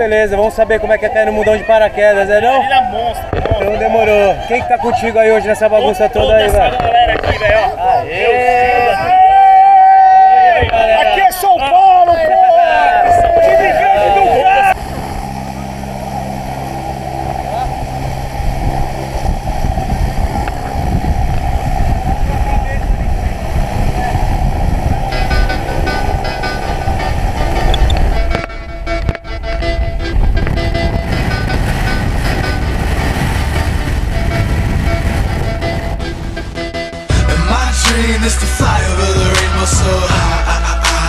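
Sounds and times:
indistinct voices: 0.0 - 28.5
wind on microphone: 0.0 - 41.0
plane engine rumble: 12.3 - 41.0.

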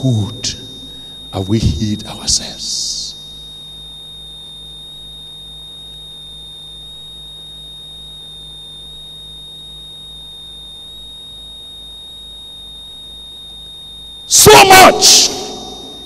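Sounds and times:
high-pitched electronic whine: 0.0 - 16.0
low electrical hum: 0.0 - 16.0.

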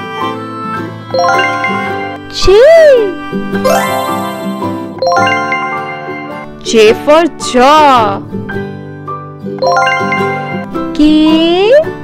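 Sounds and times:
children's background music: 0.0 - 12.0
bright ringing chime: 1.2 - 2.2, 3.7 - 6.4, 9.6 - 10.7.

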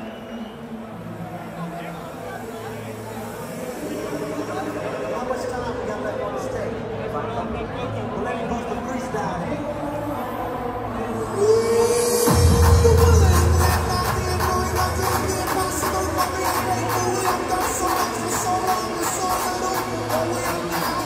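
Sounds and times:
hardcore dance music: 9.7 - 21.0
pounding kick drum: 12.2 - 17.2.

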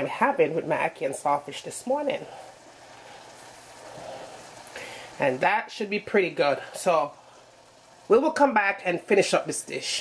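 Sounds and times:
pot of water boiling: 0.0 - 10.0.

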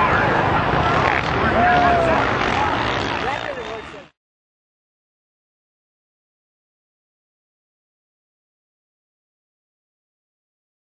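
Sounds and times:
voices talking over one another: 0.0 - 4.1
motorcycle engine running: 0.6 - 4.2.

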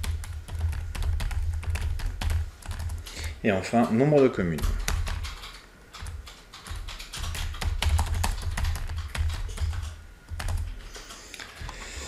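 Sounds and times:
keyboard typing: 0.0 - 12.0.

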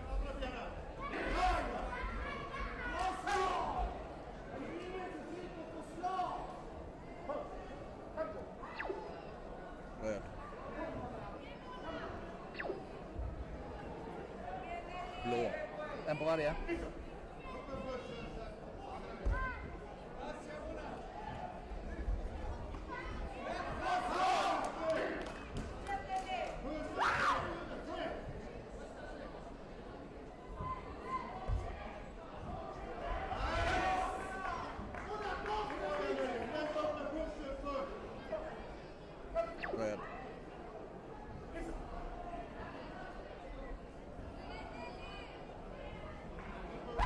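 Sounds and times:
voices shouting in a hall: 0.0 - 7.6, 23.0 - 28.2, 30.4 - 38.4
voices shouting in echoing hall: 26.4 - 27.8.

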